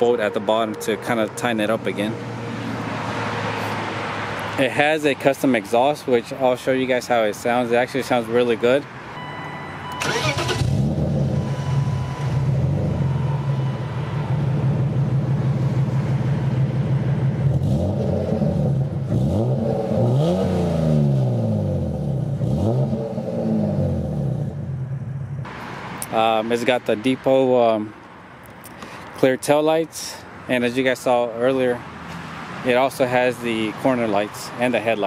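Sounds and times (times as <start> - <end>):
car engine idling and revving: 9.0 - 26.2.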